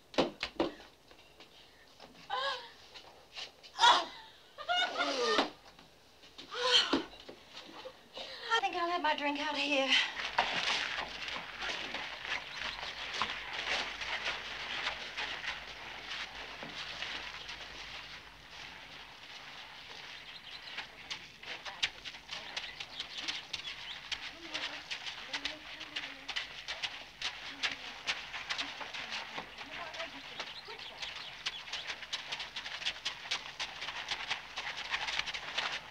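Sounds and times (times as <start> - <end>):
hooves on dirt: 8.7 - 35.9
footsteps on dirt: 9.4 - 35.9.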